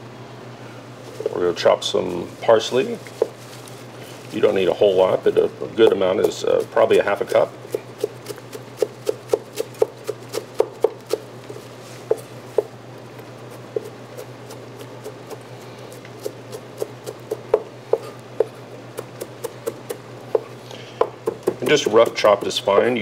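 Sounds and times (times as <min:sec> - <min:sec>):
knife chopping on cutting board: 0:05.8 - 0:11.3, 0:12.0 - 0:12.7, 0:13.5 - 0:15.4, 0:16.2 - 0:23.0.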